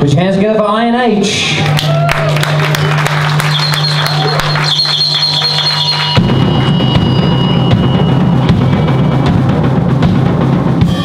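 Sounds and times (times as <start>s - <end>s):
rock band with drums: 1.3s - 11.0s.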